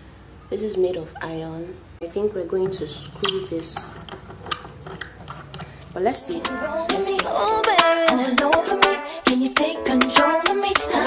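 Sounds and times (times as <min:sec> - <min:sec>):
metal bolt clicking and scraping: 0:02.7 - 0:05.9.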